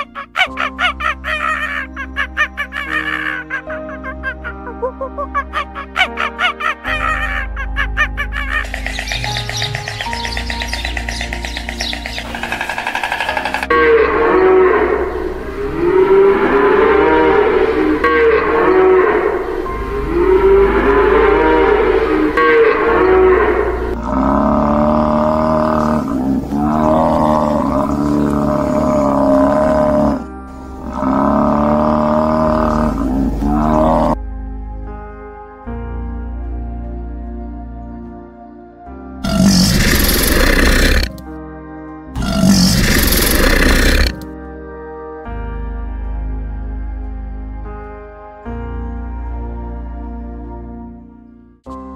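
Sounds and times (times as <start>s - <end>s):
background music: 0.0s - 51.9s
cattle mooing: 9.2s - 34.2s, 39.2s - 41.2s, 42.2s - 44.2s.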